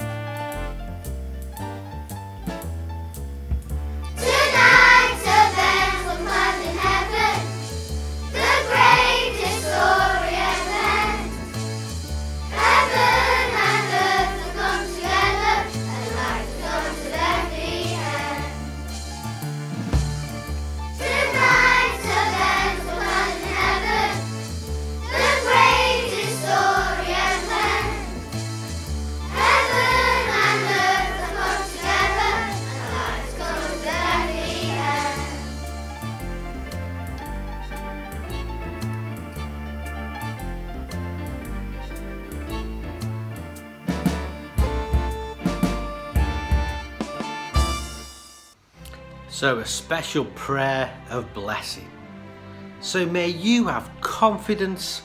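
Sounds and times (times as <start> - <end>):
instrumental backing with bass: 0.0 - 55.0
children's choir singing: 4.2 - 7.6, 8.3 - 11.6, 12.5 - 18.8, 21.0 - 28.4, 29.2 - 35.6.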